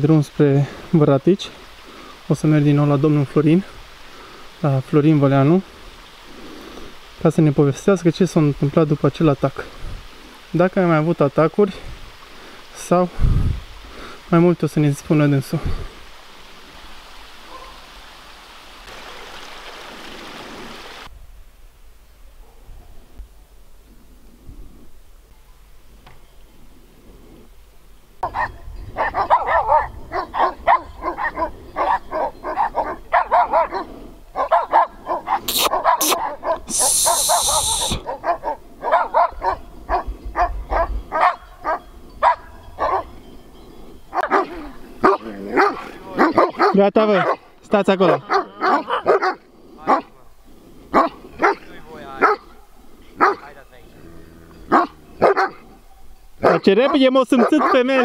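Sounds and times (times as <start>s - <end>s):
large dogs barking: 17.5s - 17.9s, 28.2s - 43.2s, 44.1s - 50.2s, 50.9s - 58.0s
short hiss: 35.4s - 38.0s.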